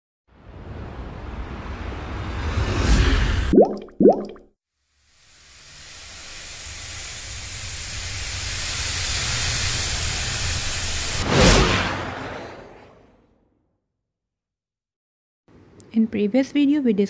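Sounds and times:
rising bloop tones: 3.5s - 4.4s
hissing wind-like noise: 5.7s - 11.2s.

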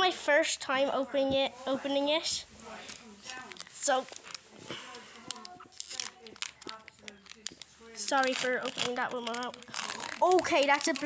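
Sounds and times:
foil wrapper crinkling and tearing: 3.0s - 11.0s.

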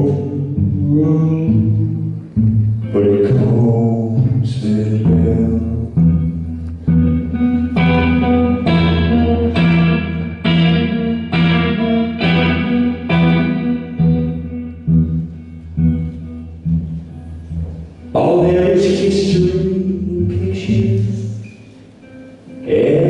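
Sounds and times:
acoustic guitar strumming: 0.0s - 23.0s.

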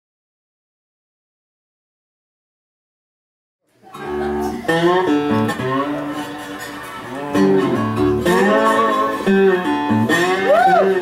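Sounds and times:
acoustic guitar riff: 3.8s - 11.0s.

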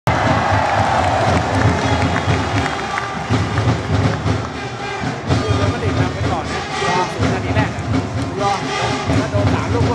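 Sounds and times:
regular low drum beat: 0.1s - 9.9s
stadium crowd noise: 0.1s - 9.9s.

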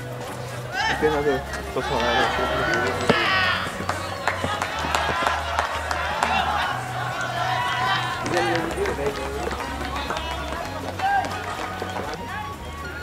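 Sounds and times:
music with steady bass line: 0.0s - 13.0s
voices talking and calling out: 0.0s - 13.0s.

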